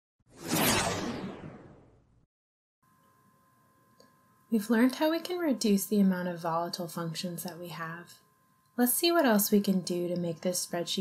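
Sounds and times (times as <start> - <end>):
whoosh sound effect: 0.3 - 2.0.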